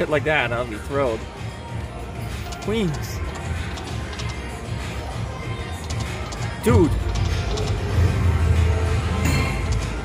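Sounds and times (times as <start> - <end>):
slot machine music: 0.0 - 10.0.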